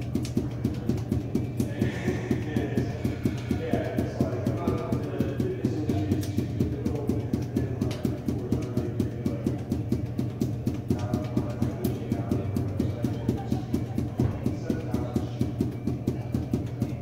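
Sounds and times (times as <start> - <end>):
balls bouncing on hard floor: 0.0 - 17.0.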